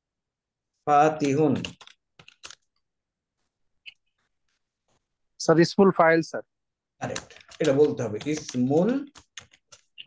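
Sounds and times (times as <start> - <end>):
person speaking: 0.7 - 10.0
computer keyboard keystrokes: 1.2 - 2.8, 7.0 - 10.0.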